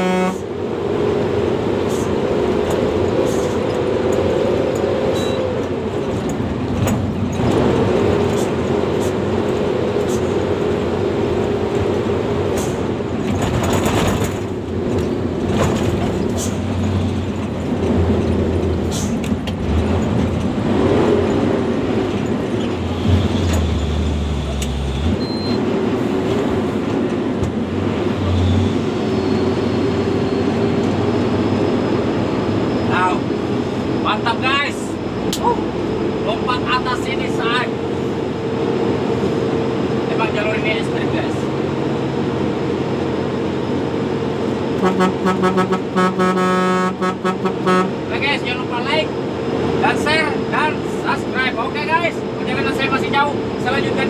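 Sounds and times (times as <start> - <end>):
diesel truck engine under load: 0.0 - 54.0
cab knocks and rattles: 13.2 - 20.6.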